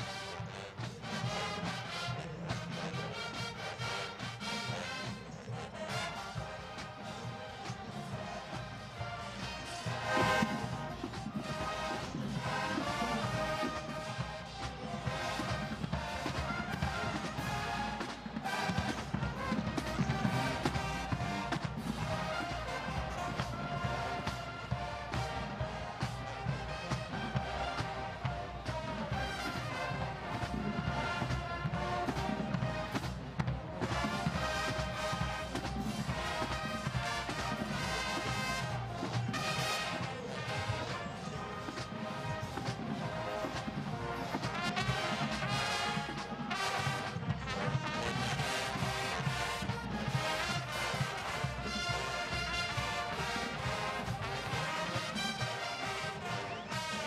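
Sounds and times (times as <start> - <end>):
marching band playing: 0.0 - 57.0.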